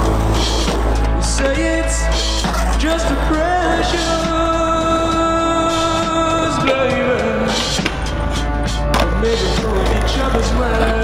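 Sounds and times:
skateboard grinding on metal rail: 0.0 - 2.8
loud song: 0.0 - 11.0.

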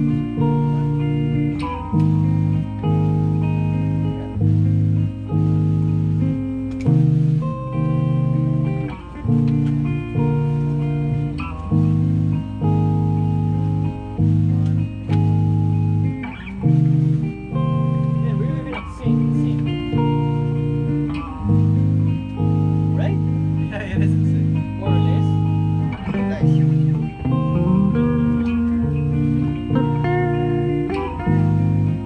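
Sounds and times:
bass line: 0.0 - 32.0
electric guitars playing chords: 0.0 - 32.0.

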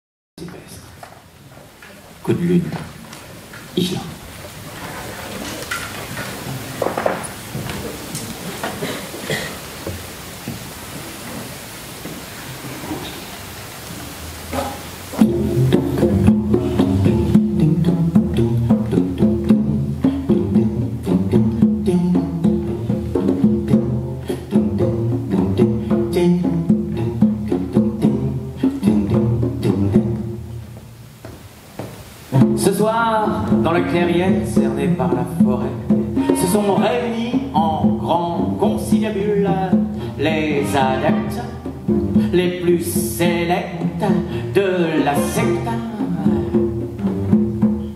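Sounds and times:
string orchestra playing: 5.0 - 8.6, 15.2 - 20.3, 32.3 - 47.9.

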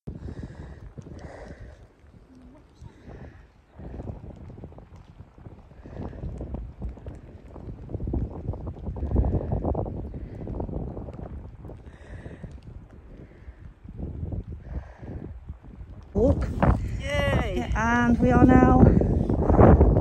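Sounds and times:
wind buffeting microphone: 0.1 - 20.0.

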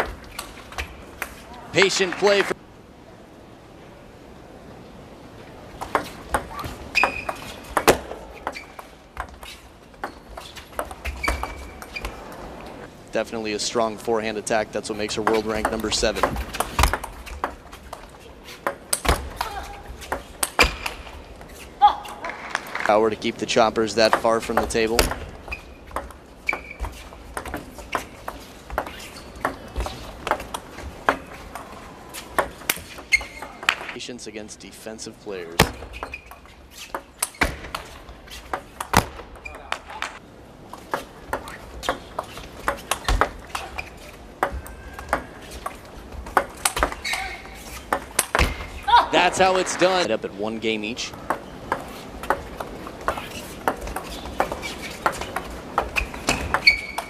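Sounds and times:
shoes squeaking on floor: 5.8 - 12.9, 14.9 - 22.4, 23.9 - 34.0, 35.4 - 40.2, 40.8 - 57.0.

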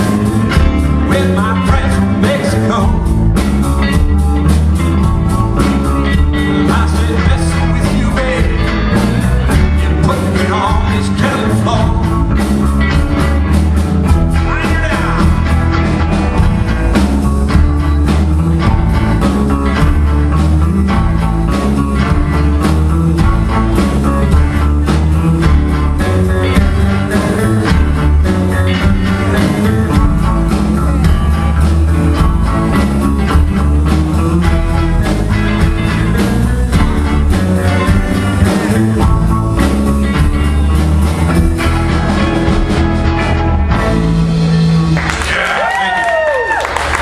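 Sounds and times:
blues band playing: 0.0 - 47.0.

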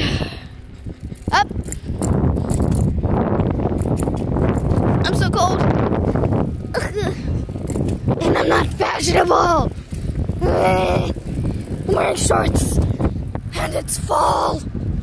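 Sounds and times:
wind buffeting microphone: 0.0 - 15.0.

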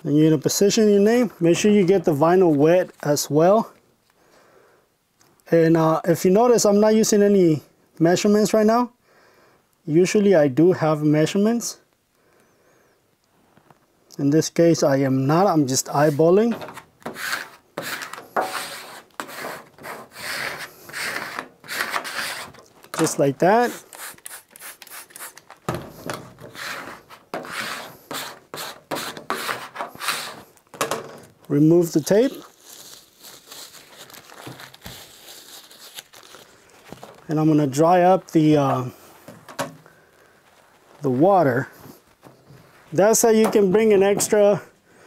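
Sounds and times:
squeegee scraping wet vinyl: 15.8 - 30.6.

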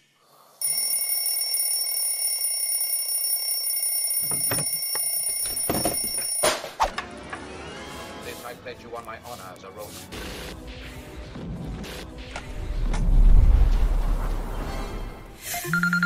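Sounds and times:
alarm clock ringing: 0.6 - 6.6.

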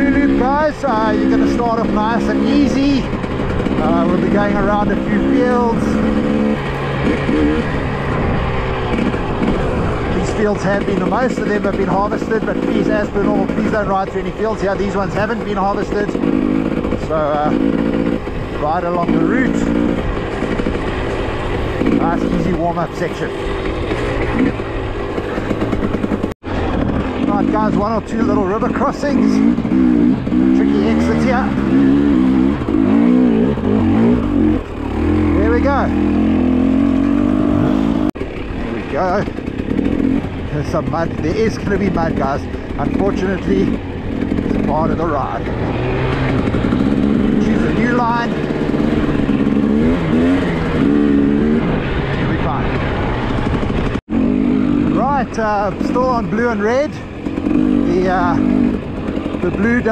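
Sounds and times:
motorcycle engine running: 0.0 - 59.9
rushing wind noise on microphone: 19.7 - 28.1.

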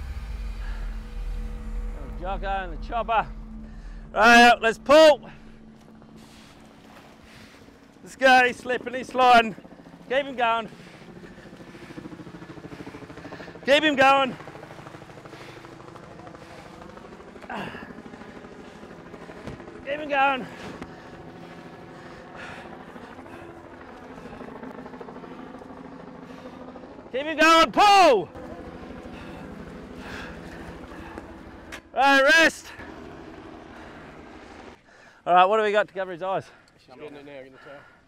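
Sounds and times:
low engine drone: 0.0 - 32.0, 32.6 - 35.1
helicopter rotor chopping: 0.0 - 37.2.

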